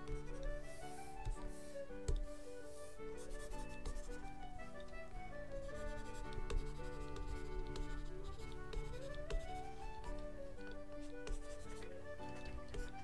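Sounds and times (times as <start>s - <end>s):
stylus scratching on drawing tablet: 0.0s - 4.9s, 5.5s - 13.0s
soft background music: 0.0s - 13.0s.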